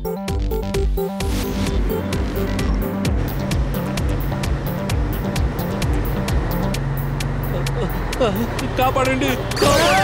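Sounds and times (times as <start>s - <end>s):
electronic music with fast beat: 0.0s - 10.0s
cartoon truck engine running: 0.3s - 10.0s.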